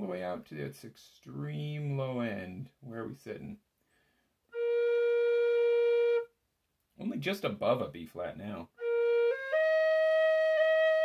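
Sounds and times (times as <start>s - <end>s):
tin whistle long steady note: 4.5s - 6.3s, 8.8s - 11.0s.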